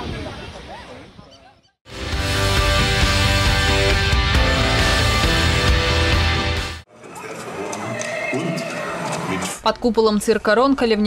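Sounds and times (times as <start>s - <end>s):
horse whinny: 7.6s - 9.6s.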